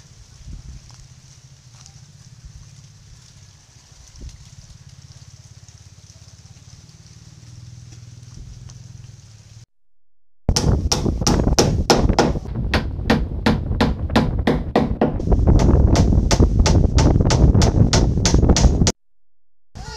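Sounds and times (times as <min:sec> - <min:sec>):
hand tool striking wooden hull: 0:10.5 - 0:19.0.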